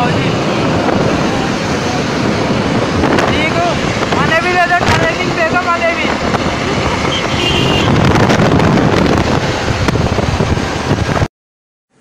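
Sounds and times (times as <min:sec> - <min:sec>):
vehicle road noise: 0:00.0 - 0:11.3
wind rushing over microphone: 0:00.0 - 0:11.3.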